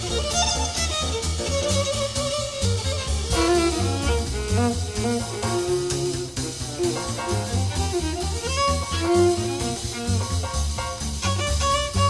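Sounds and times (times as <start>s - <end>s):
swing jazz band: 0.0s - 12.0s
violin melody: 0.0s - 12.0s
walking double bass: 0.0s - 12.0s.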